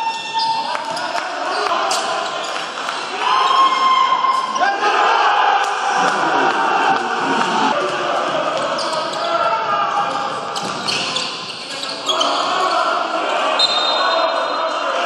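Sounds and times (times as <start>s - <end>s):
crowd voices: 0.0s - 15.0s.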